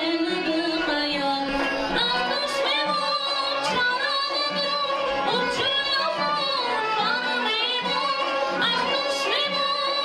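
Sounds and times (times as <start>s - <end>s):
woman singing folk song: 0.0s - 10.0s.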